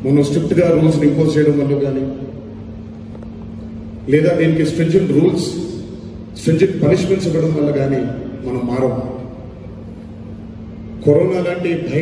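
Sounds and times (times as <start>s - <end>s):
hall hum and room noise: 0.0s - 12.0s.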